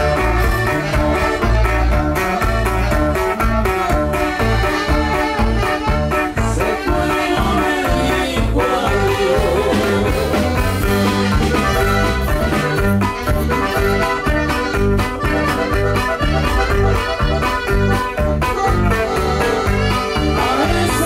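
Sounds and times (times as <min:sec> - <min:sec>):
accordion: 0:00.0 - 0:21.0
drums: 0:00.0 - 0:21.0
pulsing bass beat: 0:00.0 - 0:21.0
saxophone: 0:00.0 - 0:21.0.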